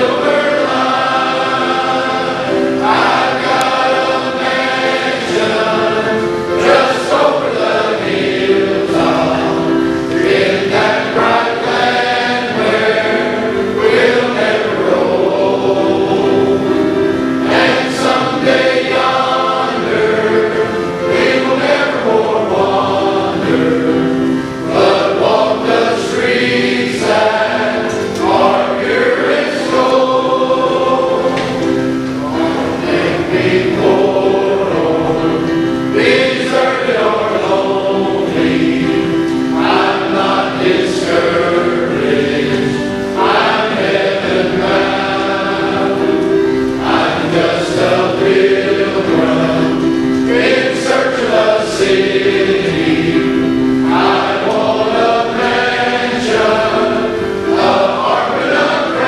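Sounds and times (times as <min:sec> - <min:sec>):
choir of men and boys singing: 0:00.0 - 0:59.0.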